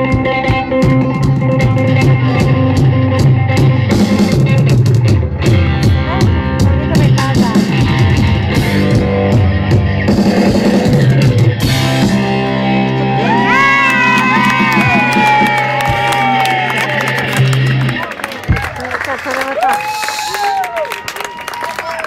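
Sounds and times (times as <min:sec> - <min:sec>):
live rock band: 0:00.0 - 0:20.3.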